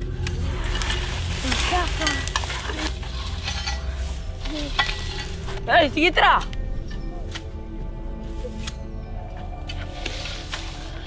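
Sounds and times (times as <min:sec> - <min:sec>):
steady low rumble: 0:00.0 - 0:10.1
scraping and rustling: 0:00.3 - 0:05.8, 0:09.6 - 0:11.0.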